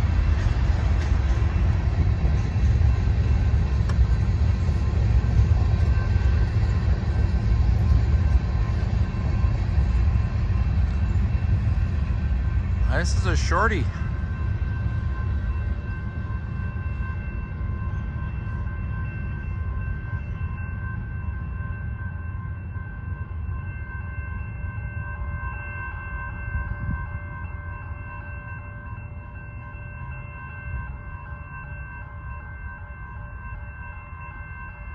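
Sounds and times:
train wheels rumbling on rails: 0:00.0 - 0:25.6
high ringing tones: 0:00.2 - 0:34.9.

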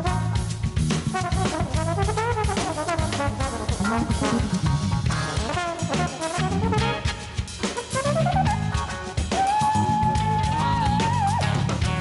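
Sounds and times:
brass instrument solo: 0:00.0 - 0:12.0
drum kit: 0:00.0 - 0:12.0
low bass line: 0:03.6 - 0:05.6.

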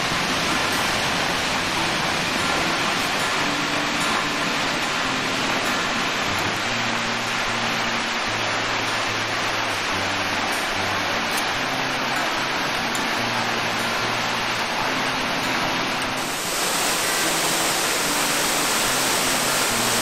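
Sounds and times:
low steady tones: 0:00.0 - 0:20.0
waterfall splashing onto rocks: 0:00.0 - 0:20.0.

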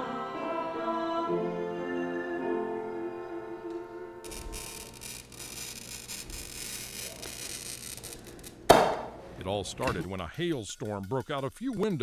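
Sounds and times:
choir and piano held chord: 0:00.0 - 0:04.3
glass cutter scoring glass: 0:04.2 - 0:08.6.

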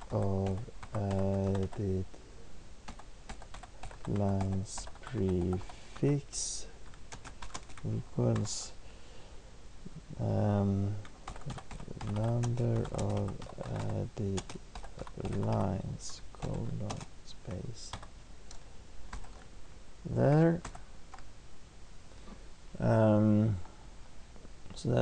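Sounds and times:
typing on computer keyboard: 0:00.0 - 0:01.8, 0:02.9 - 0:05.7, 0:07.1 - 0:08.5, 0:11.0 - 0:15.6, 0:16.4 - 0:17.1, 0:17.9 - 0:19.4.

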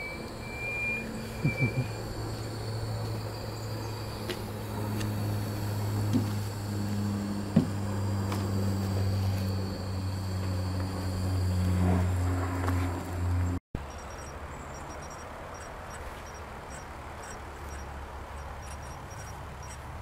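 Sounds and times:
steam engine low hum: 0:00.0 - 0:20.0.

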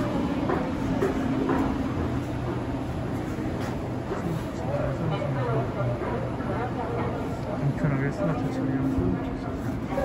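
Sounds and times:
electric train humming: 0:00.0 - 0:10.0.

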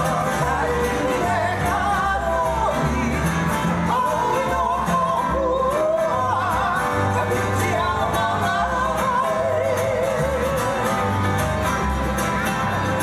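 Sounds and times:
person singing: 0:00.0 - 0:11.2
steady bass line: 0:00.0 - 0:13.0.

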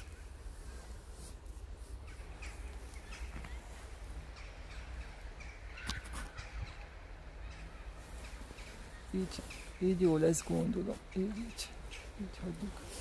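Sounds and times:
crow-like bird calls: 0:02.0 - 0:09.8.

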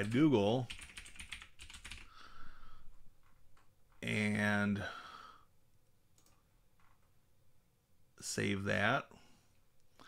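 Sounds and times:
computer mouse clicks: 0:06.1 - 0:06.4.

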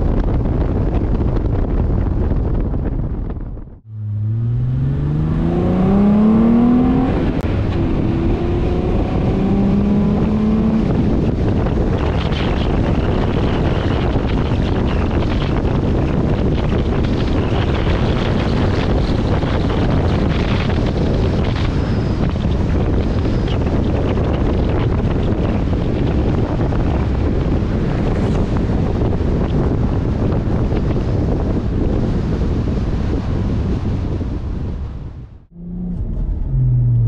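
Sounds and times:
wind on microphone: 0:00.0 - 0:37.0
road noise: 0:03.6 - 0:37.0
car engine accelerating: 0:03.7 - 0:14.4, 0:34.4 - 0:37.0.

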